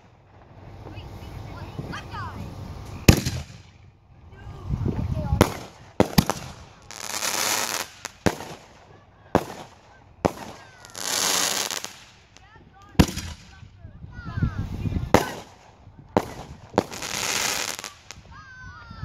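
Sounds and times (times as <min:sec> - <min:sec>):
firework bangs: 0:00.0 - 0:03.9, 0:05.2 - 0:13.8, 0:14.6 - 0:18.4
hissing firework bursts: 0:00.0 - 0:13.8, 0:14.4 - 0:18.5.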